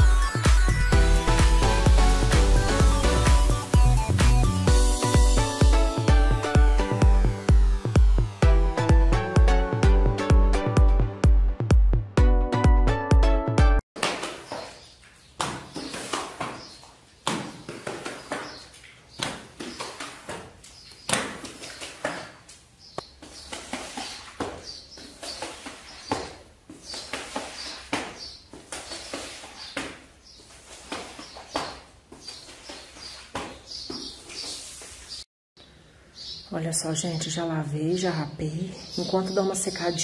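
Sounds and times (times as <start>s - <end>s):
squeegee swishing water on tiles: 14.0s - 35.2s
birds chirping: 14.3s - 40.0s.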